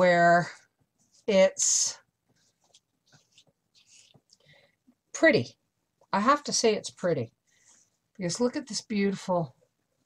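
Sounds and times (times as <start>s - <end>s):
soft rustles: 2.2s - 4.8s.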